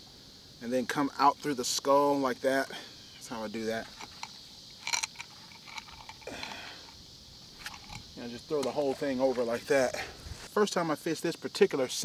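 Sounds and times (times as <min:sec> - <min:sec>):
quiet outdoor hiss: 0:00.0 - 0:12.0
soft rustle: 0:06.8 - 0:10.6.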